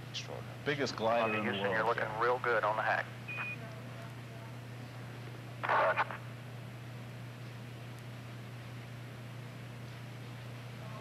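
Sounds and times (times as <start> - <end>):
radio hum and hiss: 0.0 - 11.0
clipped radio transmission: 1.0 - 4.2, 5.6 - 6.4.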